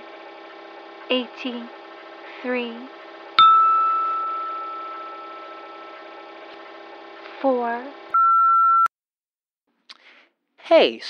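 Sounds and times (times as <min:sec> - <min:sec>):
steady low hum: 0:00.0 - 0:08.1
bell-like ding ringing out: 0:03.4 - 0:06.1.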